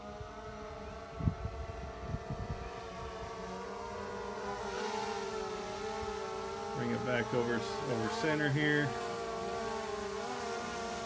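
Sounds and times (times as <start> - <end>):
wind rumble on microphone: 0.0 - 3.4
drone propellers humming: 0.0 - 11.0.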